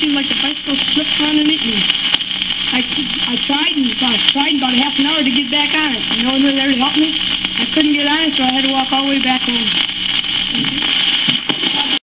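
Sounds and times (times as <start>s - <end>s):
record surface hiss and crackle: 0.0s - 12.0s
sharp record clicks: 0.0s - 12.0s.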